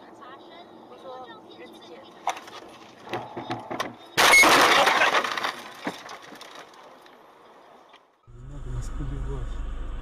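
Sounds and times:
car crash with crunching metal: 4.2 - 6.7.

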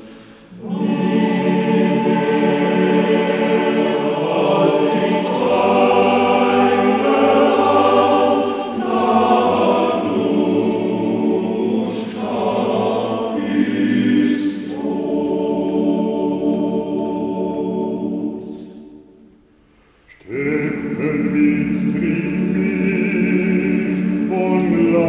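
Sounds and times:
choir singing held chords: 0.0 - 19.6, 20.2 - 25.0.

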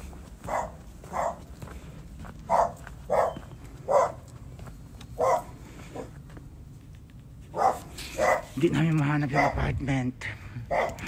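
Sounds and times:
dog barking: 0.4 - 1.5, 2.5 - 4.3, 5.2 - 6.1, 7.5 - 8.6, 9.3 - 9.6, 10.7 - 11.0.

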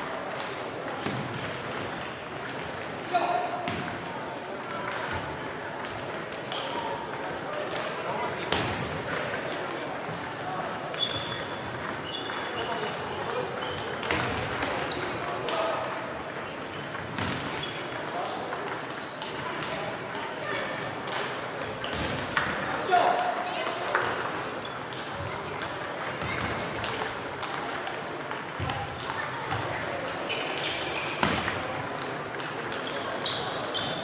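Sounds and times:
murmur of voices: 0.0 - 34.0
table tennis balls clicking: 3.7 - 8.0, 9.1 - 22.7, 23.3 - 33.7
short high-pitched squeaks: 32.2 - 34.0.

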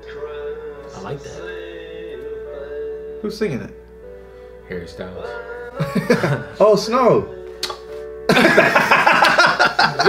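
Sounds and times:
song playing: 0.0 - 10.0
men laughing hard: 5.8 - 6.6, 8.3 - 10.0.

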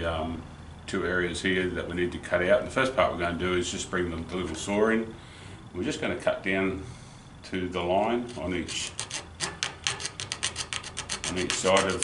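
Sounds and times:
hacksaw cutting plastic: 8.3 - 12.0.

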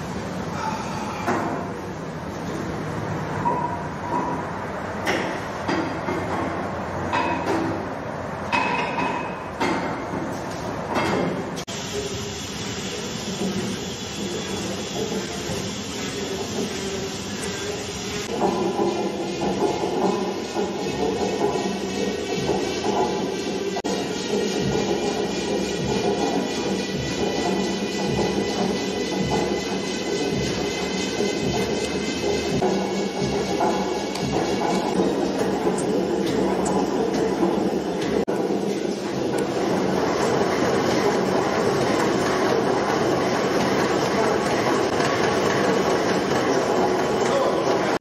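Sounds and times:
steam engine running: 11.7 - 48.0.

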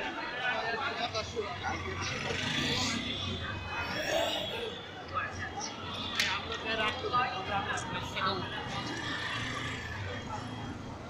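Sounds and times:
low street noise: 0.0 - 11.0
people talking: 0.0 - 11.0.

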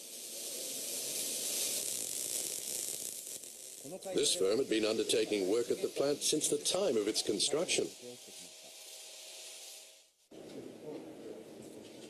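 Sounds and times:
steady high hiss: 0.0 - 12.0.

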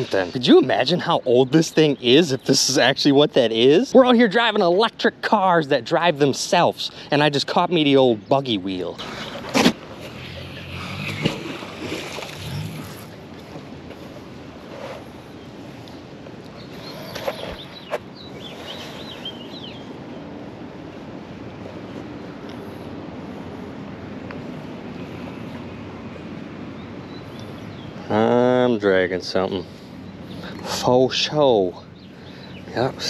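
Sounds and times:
outdoor background noise: 0.0 - 33.0.

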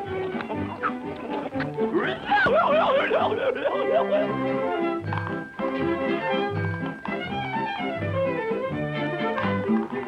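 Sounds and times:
orchestral cartoon music: 0.0 - 10.0
cartoon donkey cry: 1.9 - 4.9.

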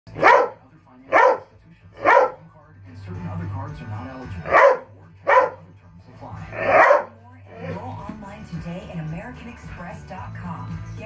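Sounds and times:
dog barking: 0.1 - 2.5, 4.4 - 5.7, 6.5 - 7.2.

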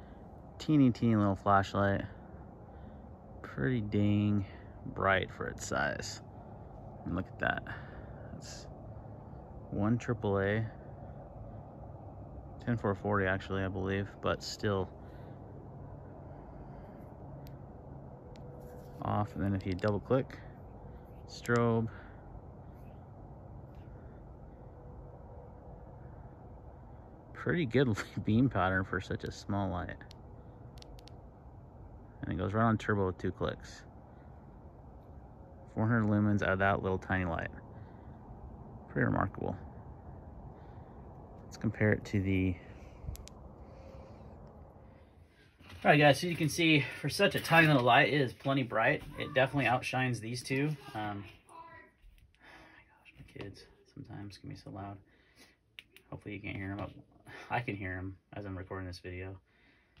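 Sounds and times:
low background hum: 0.0 - 60.0
faint sharp clicks: 30.0 - 31.2, 43.1 - 43.4.

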